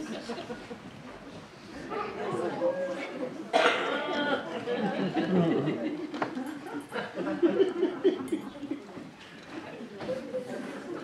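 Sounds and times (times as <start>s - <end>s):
murmured voices in a large hall: 0.0s - 11.0s
loud cough: 3.5s - 4.0s.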